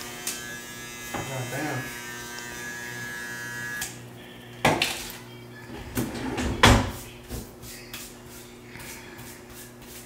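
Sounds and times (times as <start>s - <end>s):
electric hair clippers buzzing: 0.0s - 5.3s.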